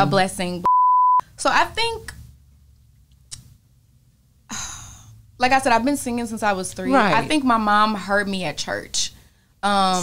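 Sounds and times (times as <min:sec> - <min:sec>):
woman sighing: 0:04.5 - 0:05.1.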